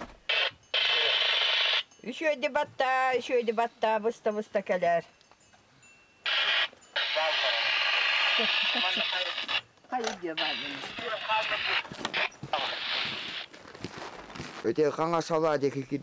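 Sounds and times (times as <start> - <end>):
radio static hiss: 0.0 - 1.8, 6.3 - 13.5
voice over radio: 0.4 - 1.3, 7.0 - 7.8, 8.4 - 9.6, 10.4 - 13.4.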